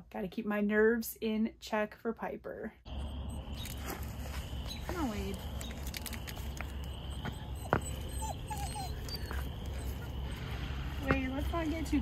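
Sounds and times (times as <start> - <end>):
frogs trilling: 2.9 - 12.0.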